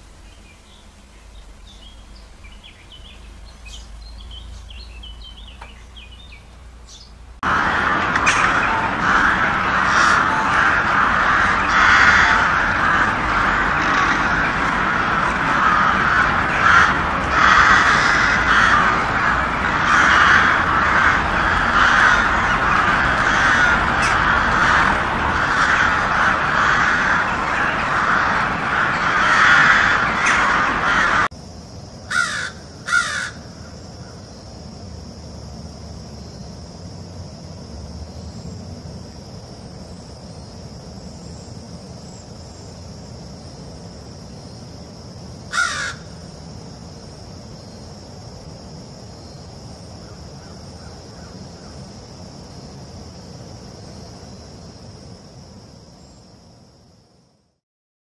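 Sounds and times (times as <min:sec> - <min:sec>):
crows cawing: 0:07.5 - 0:31.3, 0:32.1 - 0:34.2, 0:45.5 - 0:46.3.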